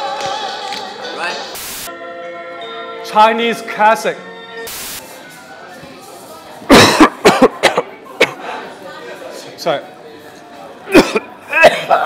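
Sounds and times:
short hiss: 1.6s - 1.9s, 4.7s - 5.2s
man coughing: 6.7s - 8.4s, 10.9s - 12.0s.

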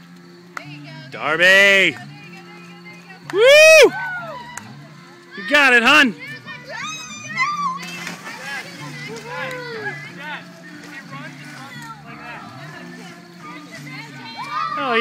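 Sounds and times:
distant people calling and chatting: 0.0s - 15.0s.

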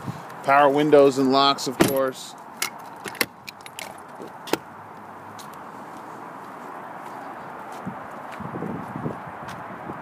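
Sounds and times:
footsteps on asphalt: 3.9s - 10.0s.

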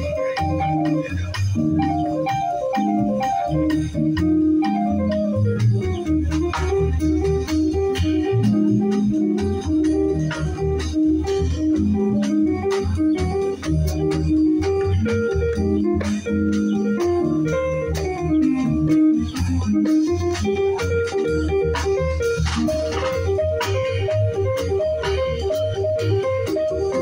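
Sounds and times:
conga drums: 0.0s - 27.0s
keyboard organ chords: 0.0s - 27.0s
walking upright bass: 0.0s - 27.0s.

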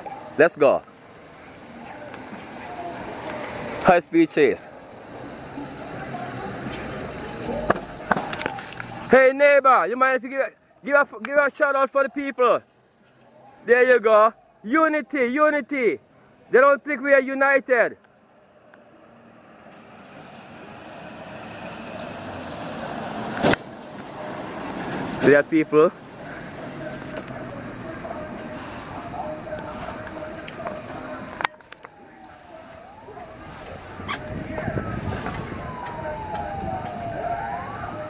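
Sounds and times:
outdoor background noise: 0.0s - 38.0s
road vehicle approaching: 0.0s - 38.0s.

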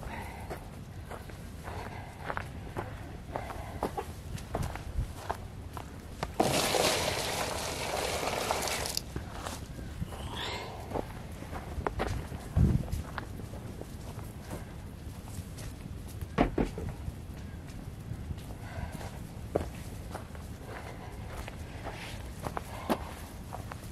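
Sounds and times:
footsteps on dry ground: 0.0s - 23.9s
water poured into pan: 6.4s - 9.0s.

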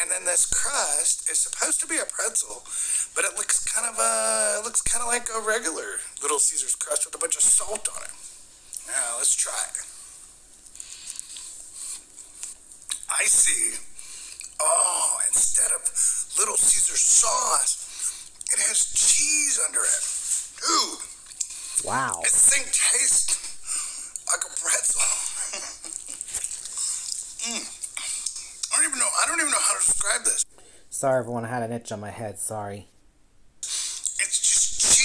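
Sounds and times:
chewing pizza: 10.5s - 13.1s, 24.0s - 28.8s
short vocal sound: 21.8s - 22.5s.

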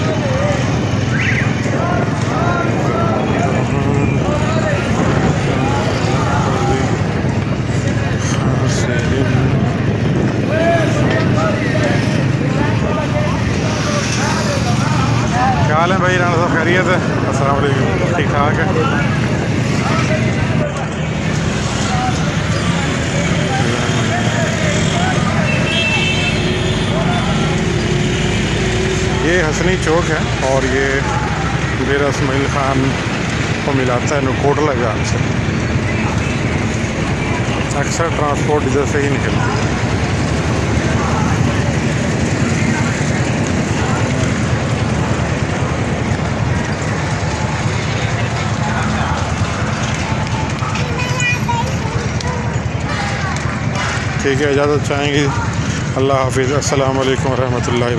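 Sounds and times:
faint voices: 0.0s - 57.9s
road traffic rumble: 0.0s - 57.9s
truck and motorcycle engines passing: 0.0s - 57.9s.

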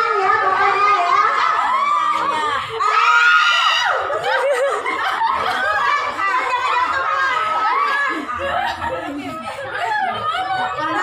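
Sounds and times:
women laughing and calling out: 0.0s - 11.0s.

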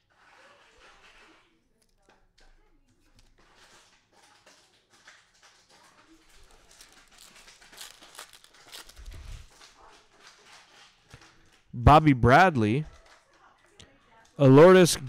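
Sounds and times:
foil pack crinkling and tearing: 6.2s - 10.9s.

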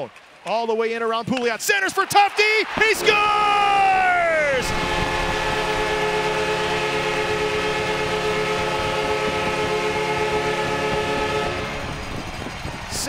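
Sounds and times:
crowd noise: 0.0s - 8.9s, 9.5s - 13.0s
arena goal horn blast: 2.8s - 12.6s.

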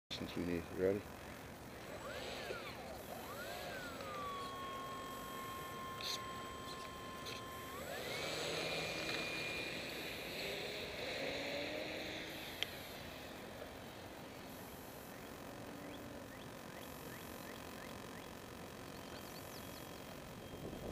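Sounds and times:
model plane motor whining: 0.4s - 20.9s.

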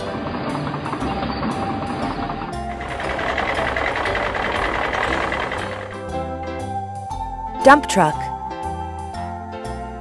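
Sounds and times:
truck engine: 0.0s - 6.8s
background music: 0.0s - 10.0s.

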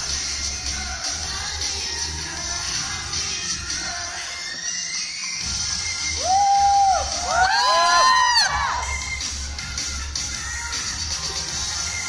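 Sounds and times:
pop dance music over speakers: 0.0s - 12.0s
audience screaming and cheering: 5.4s - 9.3s.

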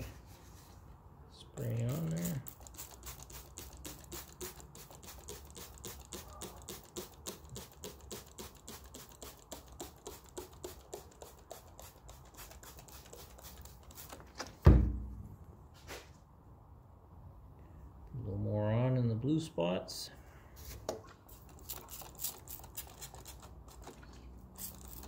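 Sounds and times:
spray bottle spritzing: 1.9s - 14.3s, 21.2s - 25.0s
loud thump: 14.6s - 15.3s.

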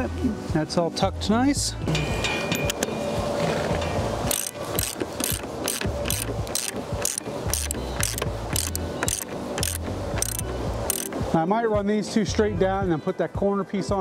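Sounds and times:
ratchet wrench clicking: 4.3s - 11.2s.

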